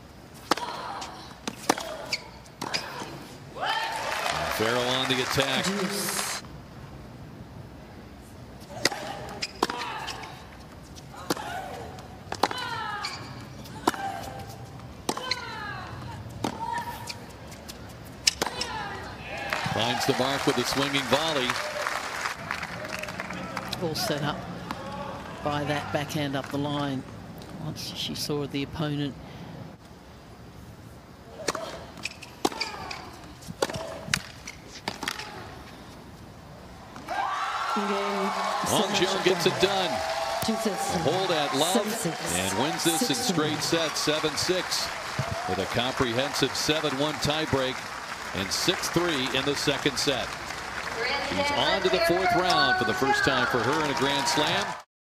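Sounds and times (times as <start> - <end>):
tennis stadium background noise: 0.0 - 54.9
racket striking tennis ball: 31.4 - 35.3
tennis ball hit by racquet: 33.6 - 35.3.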